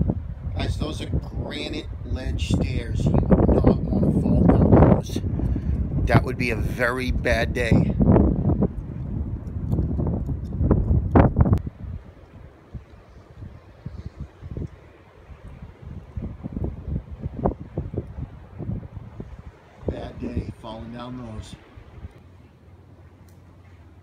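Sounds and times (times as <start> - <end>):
wind buffeting microphone: 0.0 - 22.2.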